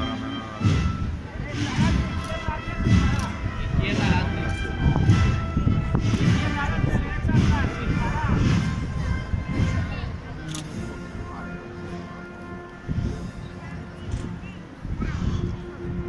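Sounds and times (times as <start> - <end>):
heavy drum beats: 0.0 - 11.4
procession band music: 0.0 - 14.8
crowd voices: 0.0 - 16.0.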